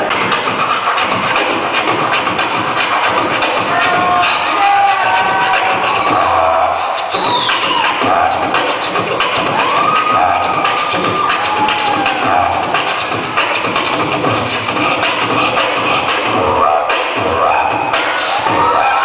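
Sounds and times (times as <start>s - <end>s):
beatboxing into a microphone: 0.0s - 19.0s
audience cheering and whooping: 3.6s - 13.1s, 17.4s - 19.0s.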